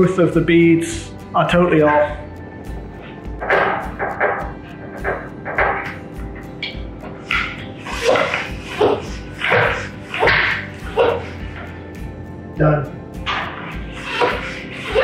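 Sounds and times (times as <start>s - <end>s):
background music with steady beat: 0.0s - 15.0s
hand floor pump strokes: 3.0s - 11.8s, 13.2s - 15.0s.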